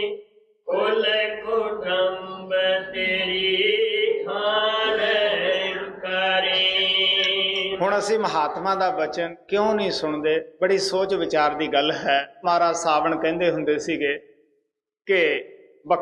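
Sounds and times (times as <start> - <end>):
person chanting a hymn: 0.7 - 8.5.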